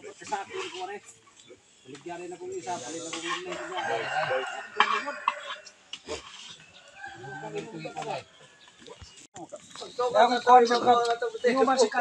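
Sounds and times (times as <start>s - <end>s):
people talking in background: 0.0s - 12.0s
rooster crowing: 3.5s - 5.8s, 6.8s - 8.7s.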